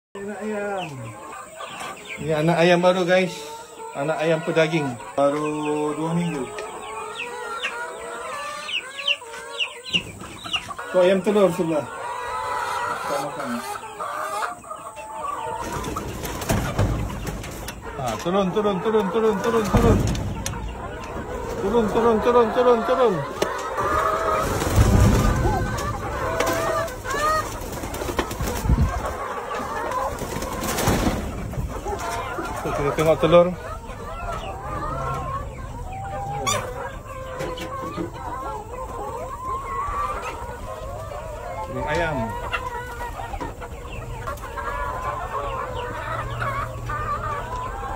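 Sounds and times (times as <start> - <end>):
chicks peeping: 0.2 - 47.9
hens clucking: 0.2 - 47.9.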